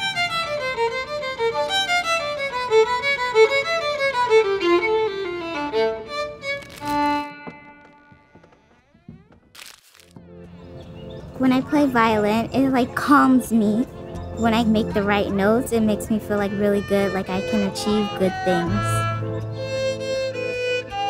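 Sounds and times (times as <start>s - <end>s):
violin melody: 0.0s - 8.5s, 14.4s - 21.0s.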